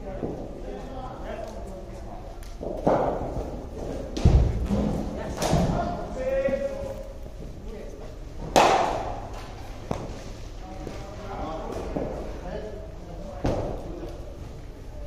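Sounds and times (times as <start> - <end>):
ball thudding on turf and netting: 2.6 - 5.8
bat striking cricket ball: 8.5 - 9.2.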